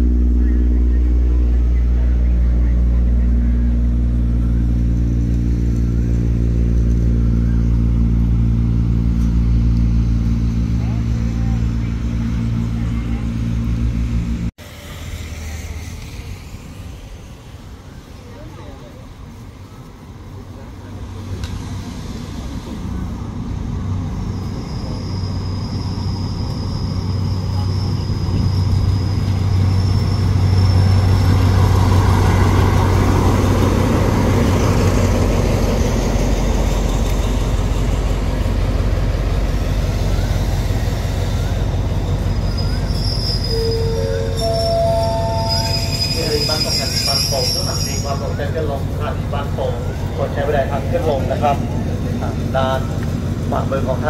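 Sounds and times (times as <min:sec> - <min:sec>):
diesel locomotive engine hum: 0:00.0 - 0:54.0
train brakes squealing: 0:23.7 - 0:33.0, 0:39.8 - 0:48.8.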